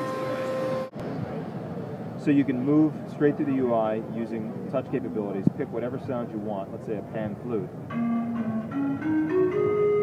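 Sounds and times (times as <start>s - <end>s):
keyboard pan flute run: 0.0s - 0.9s, 7.9s - 10.0s.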